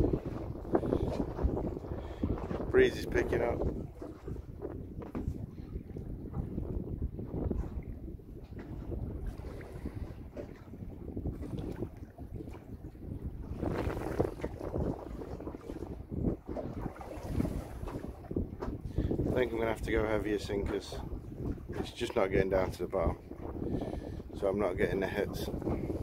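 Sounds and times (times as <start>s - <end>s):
wind buffeting microphone: 0.0s - 26.0s.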